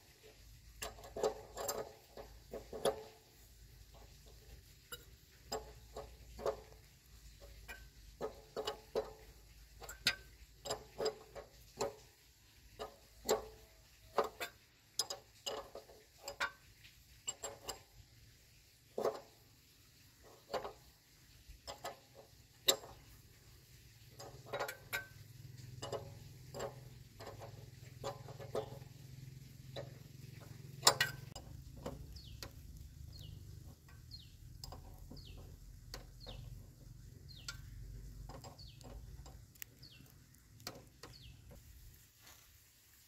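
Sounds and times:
hand tools clicking on metal: 0.8 - 16.6, 24.1 - 28.9, 29.6 - 41.6
bird chirping: 28.3 - 41.6.

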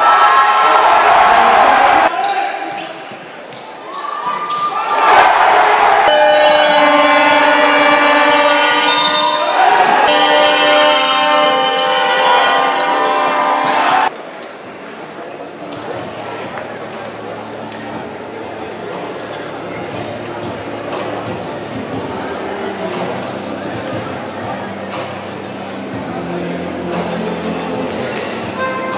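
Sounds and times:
crowd noise: 0.0 - 28.9
loud held tones: 6.1 - 14.1.

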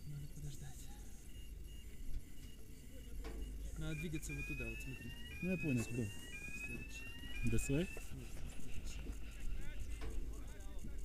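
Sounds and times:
high electronic alarm tone: 0.0 - 9.5
man talking: 3.7 - 8.4.

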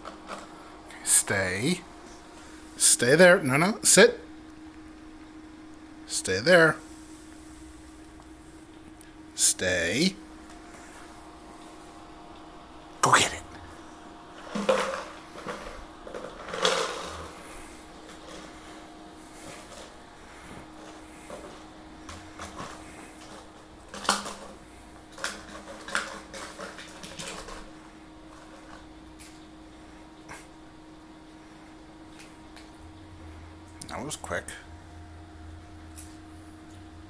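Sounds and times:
plastic bottle knocking and crinkling: 14.4 - 17.2.

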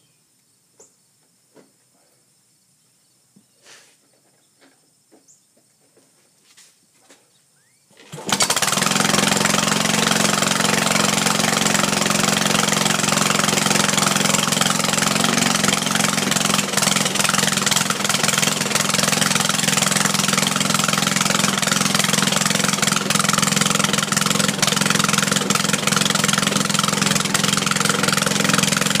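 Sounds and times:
lawn mower engine running: 7.9 - 29.0.

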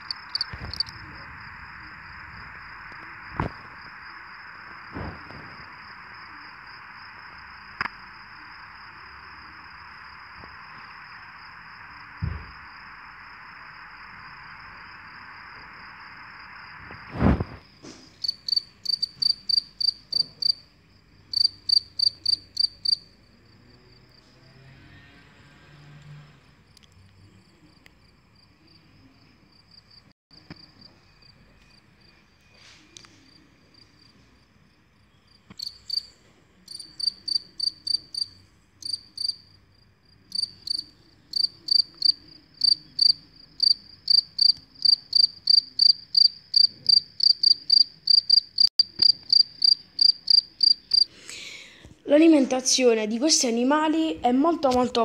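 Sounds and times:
cricket chirping: 0.0 - 25.1, 26.7 - 51.1.

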